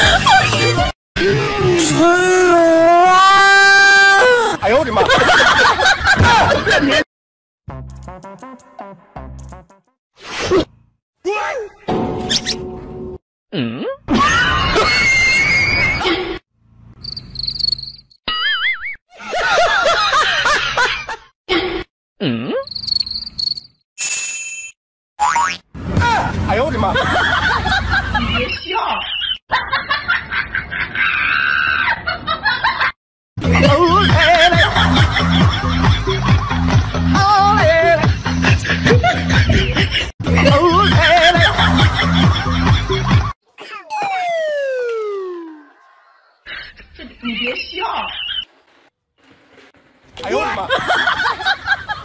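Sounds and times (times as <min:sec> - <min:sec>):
cartoon sound effects: 0:25.2 - 0:25.6, 0:43.6 - 0:45.7
comic falling whistle: 0:43.9 - 0:45.8.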